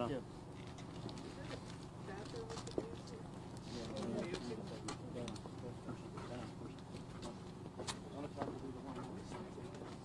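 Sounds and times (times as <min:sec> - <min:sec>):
faint indistinct voices: 0:01.1 - 0:10.0.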